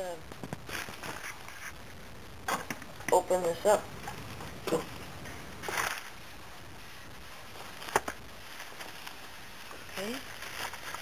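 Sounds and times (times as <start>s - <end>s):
cardboard packaging rustling: 0.4s - 1.8s, 5.6s - 11.0s.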